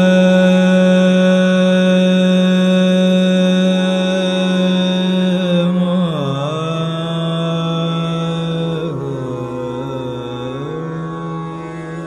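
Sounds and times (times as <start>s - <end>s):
man singing wordless classical vocal: 0.0s - 12.0s.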